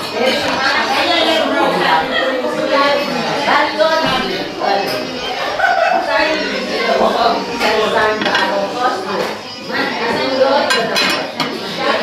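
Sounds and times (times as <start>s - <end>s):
background voices: 0.0s - 12.0s.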